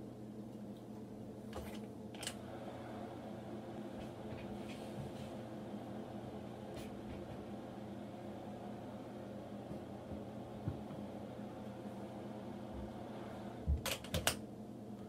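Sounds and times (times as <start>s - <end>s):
incubator fan motor humming: 0.0s - 15.0s.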